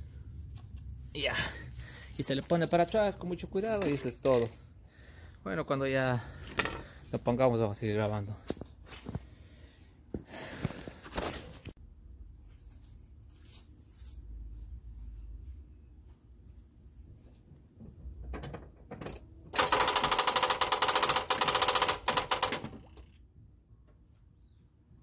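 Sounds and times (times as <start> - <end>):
fast rattle of sharp clicks: 19.5 - 23.1.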